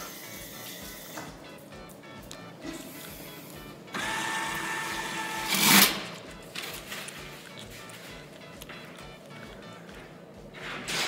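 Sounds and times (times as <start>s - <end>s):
paper towel dispenser motor whirring: 0.0s - 1.4s, 3.0s - 11.0s.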